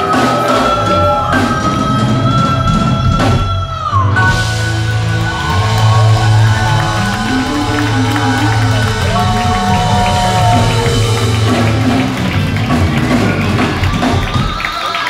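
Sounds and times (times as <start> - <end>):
woman singing: 0.0 - 11.5
crowd noise: 0.0 - 15.0
live band playing: 0.0 - 15.0.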